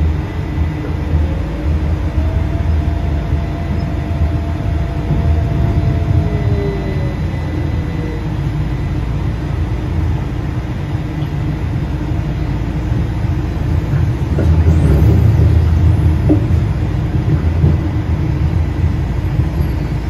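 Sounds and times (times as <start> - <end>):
faint whine sliding down in pitch: 0.0 - 9.7
vehicle engine and road rumble: 0.0 - 20.0.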